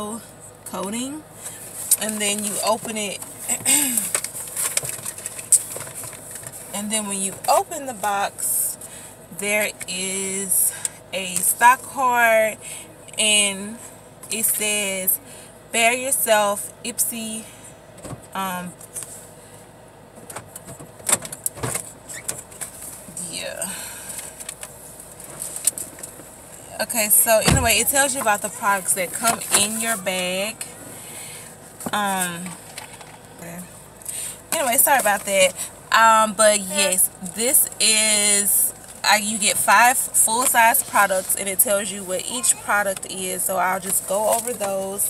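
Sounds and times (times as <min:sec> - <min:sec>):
handling clicks and rustles: 0:01.7 - 0:06.7.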